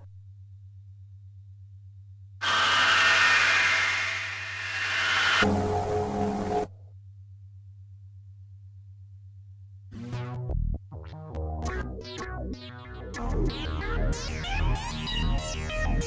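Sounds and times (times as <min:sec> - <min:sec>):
hissy synth swell: 0:02.4 - 0:06.7.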